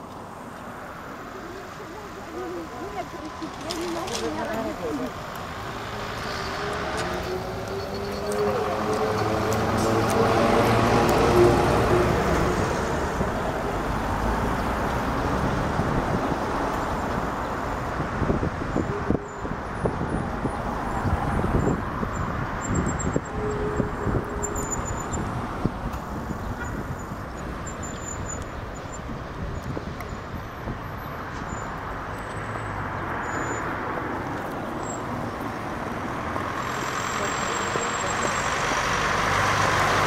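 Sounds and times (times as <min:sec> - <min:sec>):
road traffic noise: 0:00.0 - 0:40.0.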